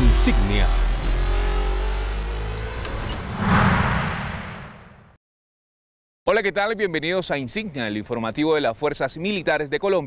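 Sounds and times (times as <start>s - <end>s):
whoosh: 3.0s - 5.2s.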